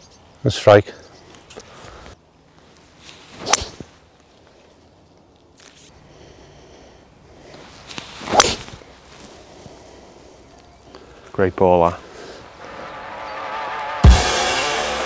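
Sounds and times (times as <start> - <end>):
golf club swishing: 3.0 - 4.0, 7.6 - 8.9
clubhead striking golf ball: 3.4 - 3.8, 8.3 - 8.7.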